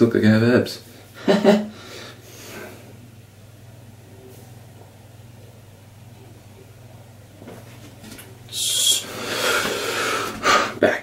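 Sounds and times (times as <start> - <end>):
man blowing out breath: 8.5 - 10.8.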